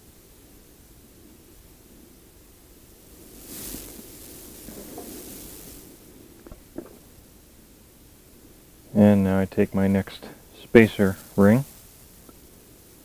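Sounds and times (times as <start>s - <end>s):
faint steady hiss: 0.0s - 13.0s
rustling handling noise: 3.0s - 7.2s.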